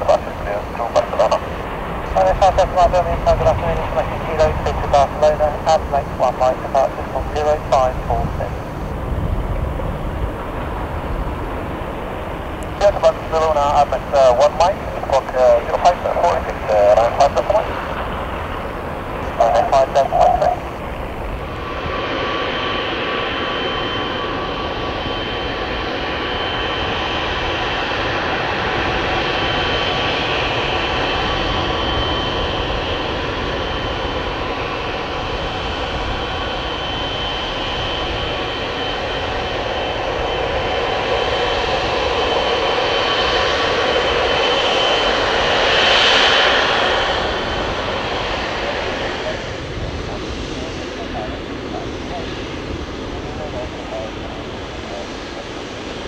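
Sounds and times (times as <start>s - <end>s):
jet engine roar with whine: 0.0s - 56.0s.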